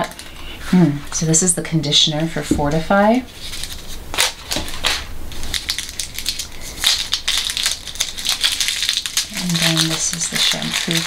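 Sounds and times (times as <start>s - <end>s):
paper wrapping crinkling: 0.0s - 11.0s.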